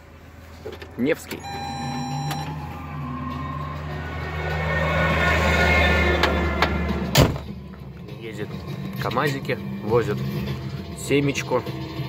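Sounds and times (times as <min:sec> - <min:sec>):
truck cab low hum: 0:00.0 - 0:04.0
heavy truck driving past: 0:01.5 - 0:09.0.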